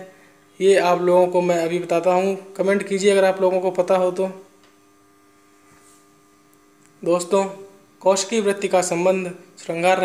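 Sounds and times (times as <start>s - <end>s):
man speaking: 0.0s - 4.5s, 7.0s - 10.0s
faint electrical hum: 0.0s - 10.0s.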